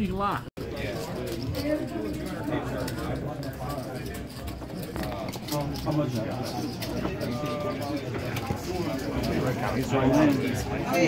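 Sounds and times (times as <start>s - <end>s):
murmur of voices: 0.6s - 11.0s.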